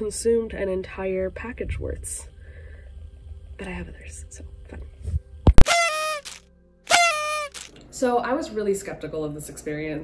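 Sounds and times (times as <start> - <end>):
short pitched music notes: 5.6 - 7.7.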